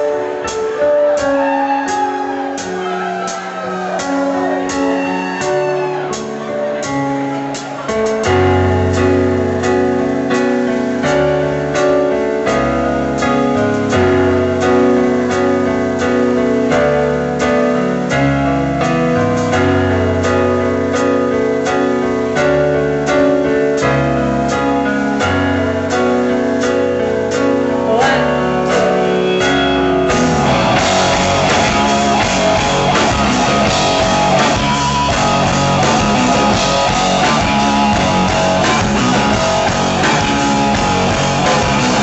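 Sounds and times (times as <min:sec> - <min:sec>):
drums beat: 0:00.0 - 0:12.1, 0:27.3 - 0:42.0
electric guitar: 0:00.0 - 0:42.0
piano chords: 0:00.0 - 0:42.0.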